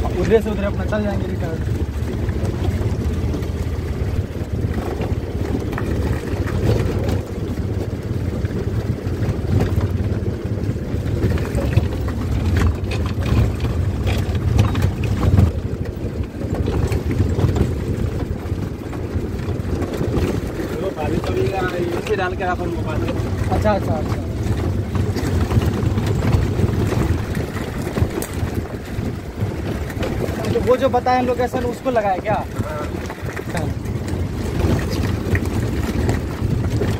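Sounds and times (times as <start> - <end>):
vehicle and road noise: 0.0 - 36.9
wind buffeting microphone: 0.0 - 36.9.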